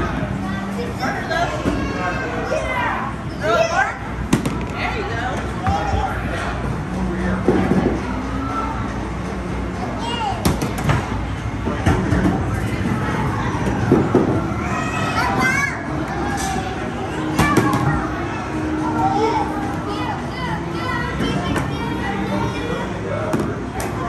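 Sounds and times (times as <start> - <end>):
people talking: 14.7 - 24.0.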